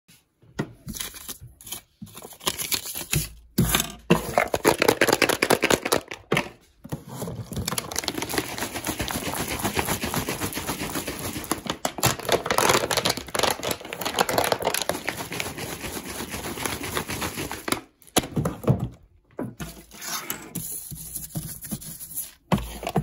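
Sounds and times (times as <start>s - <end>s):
plastic wrap crinkling: 7.3s - 18.2s.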